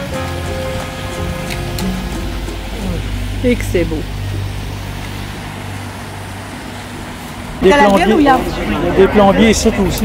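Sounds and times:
boat wash hiss: 0.0s - 10.0s
motorboat engine droning: 0.0s - 10.0s.

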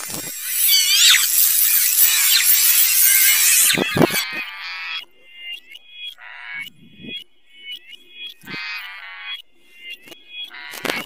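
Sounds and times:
high squawk-like tones: 0.0s - 7.2s.

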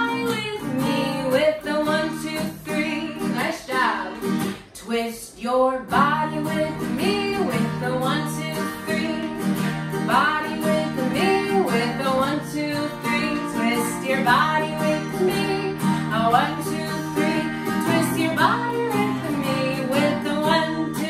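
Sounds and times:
strummed acoustic guitar: 0.0s - 4.9s, 5.9s - 21.0s
woman singing: 0.0s - 21.0s.

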